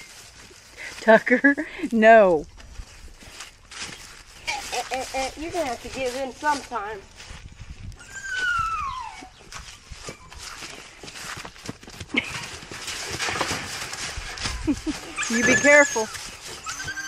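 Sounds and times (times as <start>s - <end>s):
footsteps and hooves in dry leaves: 0.0s - 17.0s.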